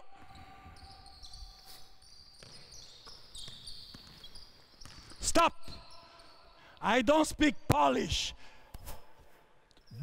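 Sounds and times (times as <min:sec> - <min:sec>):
sneakers squeaking on gym floor: 0:00.2 - 0:06.6.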